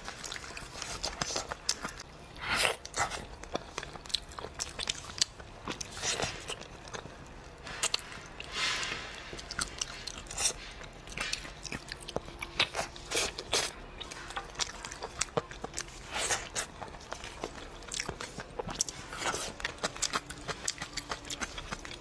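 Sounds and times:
wet chewing and smacking: 0.0s - 22.0s
sticky clicks of biting: 9.4s - 22.0s.

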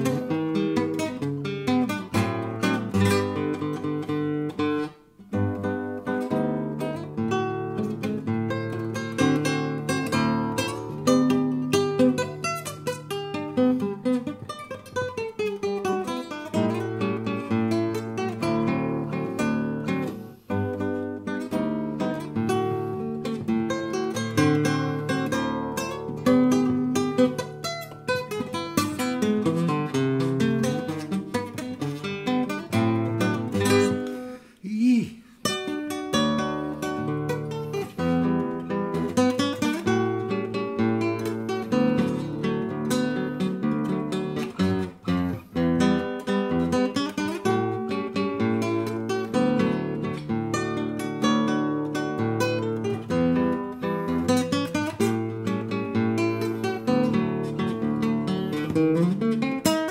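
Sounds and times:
flamenco guitar fingerstyle: 0.0s - 59.9s.

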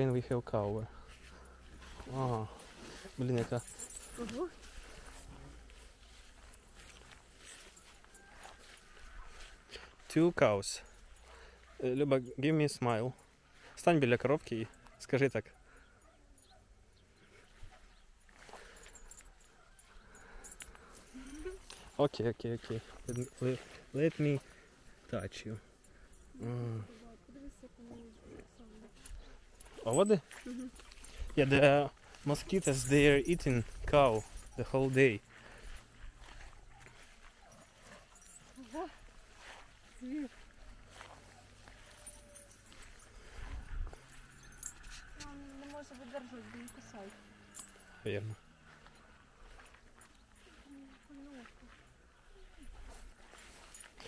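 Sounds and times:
chain collar clinking: 0.0s - 54.0s.

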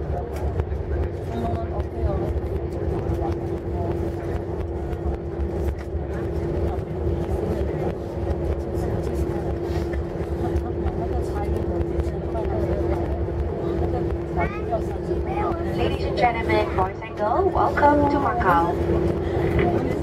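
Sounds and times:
held hum: 0.0s - 20.0s
low rumble of engines and runway: 0.0s - 20.0s.

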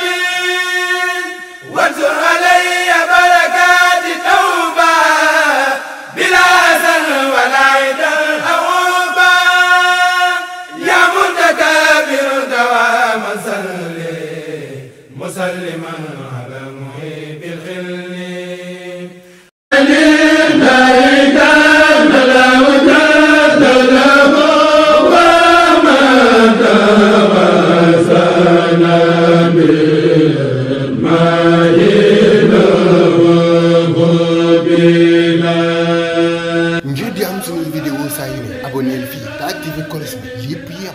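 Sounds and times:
man chanting devotional poem: 36.8s - 40.9s.

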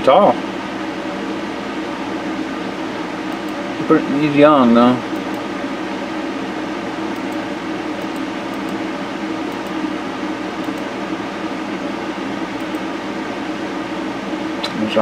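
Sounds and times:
fan whirring hum: 0.0s - 15.0s.

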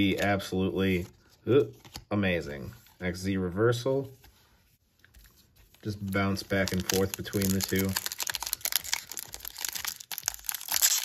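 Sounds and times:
foil wrapper crinkling: 5.8s - 11.0s.

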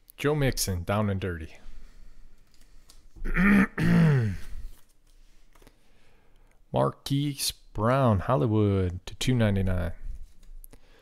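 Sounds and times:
man clearing his throat: 3.2s - 4.6s.

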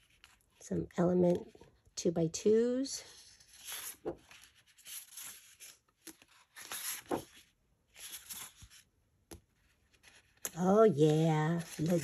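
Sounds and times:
paper rustling and sliding: 3.1s - 8.9s, 9.6s - 12.0s.

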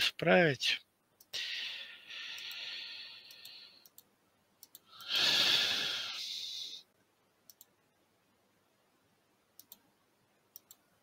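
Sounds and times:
computer mouse clicking: 3.3s - 5.1s, 7.4s - 7.8s, 9.5s - 9.9s, 10.5s - 10.9s
loud breath out: 5.0s - 6.8s.

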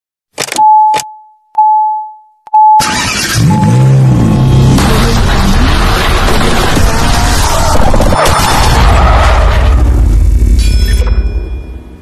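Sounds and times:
engine-like revving sound: 2.8s - 10.0s
sharp hits with ringing tone: 10.5s - 12.0s.

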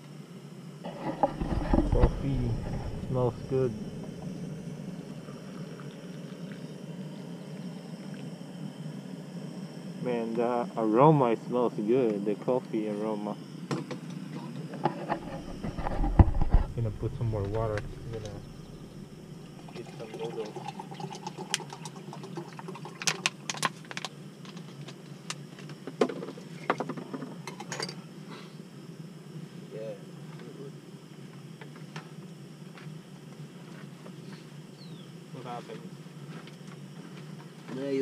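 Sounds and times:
steady low rumble: 1.2s - 11.5s, 15.2s - 19.7s
water pouring into pot: 19.5s - 23.6s.

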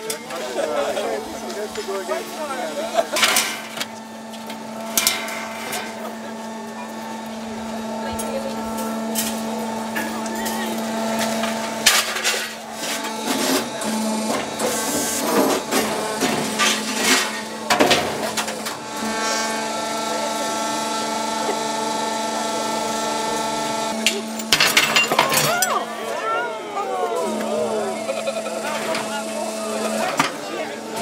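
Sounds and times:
machine motor hum: 0.0s - 24.8s, 25.8s - 31.0s
crowd voices: 0.0s - 31.0s.

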